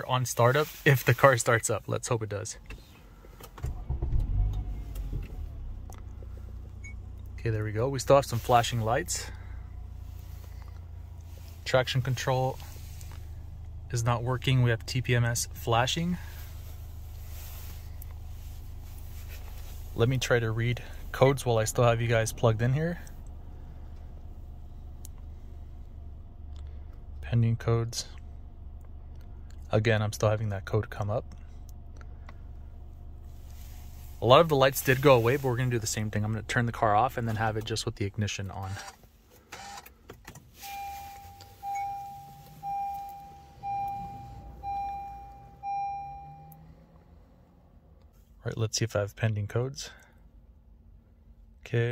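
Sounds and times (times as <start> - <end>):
car engine idling: 2.6 - 48.4
car warning chime: 40.6 - 46.8.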